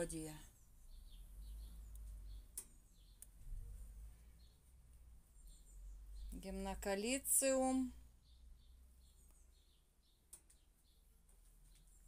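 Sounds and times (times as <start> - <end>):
faint high bird chirps: 0.0 - 12.0.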